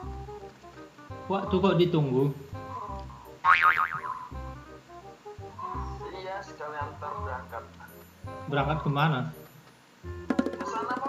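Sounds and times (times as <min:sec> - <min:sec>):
background music: 0:00.0 - 0:11.0
cartoon boing sound effect: 0:03.4 - 0:04.4.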